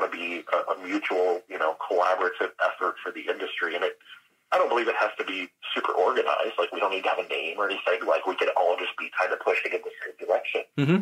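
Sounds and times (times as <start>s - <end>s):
person talking over phone line: 0.0s - 11.0s.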